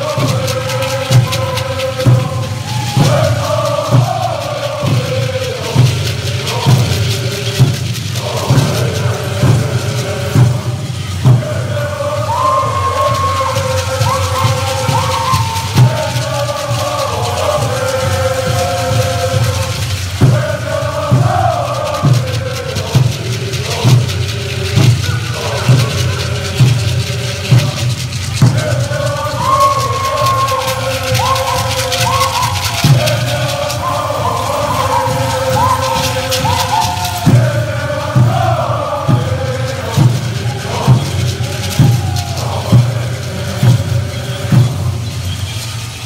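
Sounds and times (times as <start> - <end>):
hand drums beaten steadily: 0.0 - 46.0
men singing in unison: 0.0 - 46.0.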